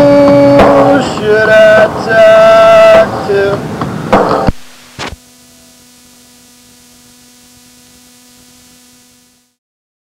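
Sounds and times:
electrical hum with hiss: 0:00.0 - 0:09.6.

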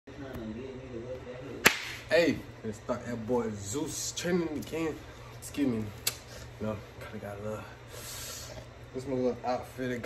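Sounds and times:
sharp crack: 0:01.6 - 0:02.1.

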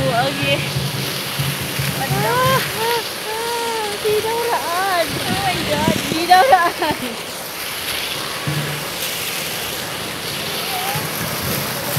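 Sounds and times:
fountain water splashing: 0:00.0 - 0:11.9.

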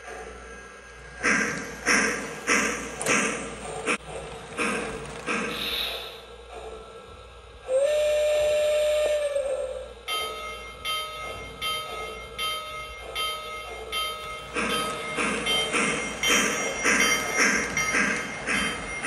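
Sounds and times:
rhythmic steam chuffing: 0:00.0 - 0:19.0
steam whistle: 0:07.7 - 0:10.0
locomotive bell ringing: 0:10.1 - 0:19.0.

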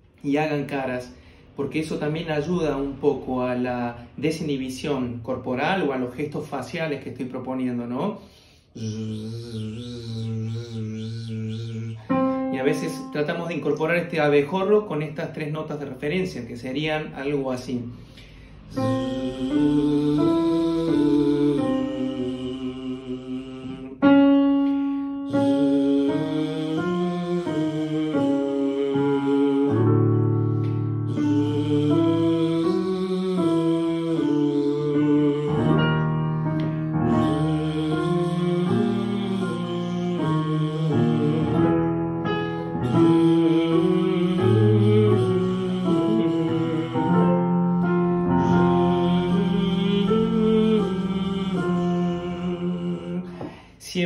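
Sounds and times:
man humming vocal warm-up: 0:08.7 - 0:13.2, 0:18.6 - 0:24.0, 0:24.6 - 0:35.8, 0:37.1 - 0:41.8, 0:42.8 - 0:47.4, 0:48.3 - 0:53.7
man humming buzzing tone: 0:08.8 - 0:12.4, 0:31.1 - 0:35.6, 0:37.2 - 0:41.7
digital piano notes: 0:12.0 - 0:15.5, 0:18.6 - 0:22.4, 0:24.0 - 0:53.4.

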